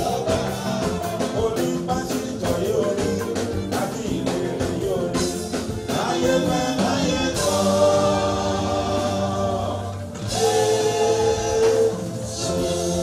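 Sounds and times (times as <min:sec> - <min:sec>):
bass accompaniment: 0:00.0 - 0:13.0
gospel choir singing: 0:00.0 - 0:13.0.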